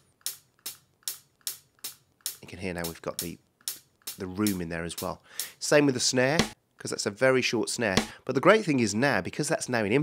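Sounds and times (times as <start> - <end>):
sampled hi-hat hits: 0.0 - 6.6.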